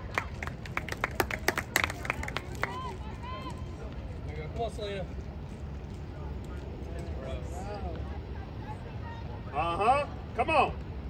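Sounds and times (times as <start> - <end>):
spectators clapping: 0.0 - 3.0.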